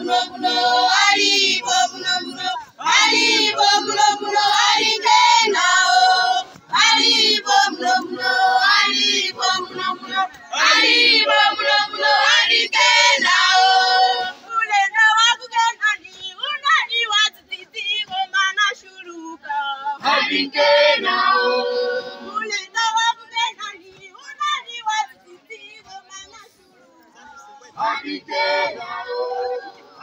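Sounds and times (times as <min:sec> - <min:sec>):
girls and children singing: 0:00.0 - 0:30.0.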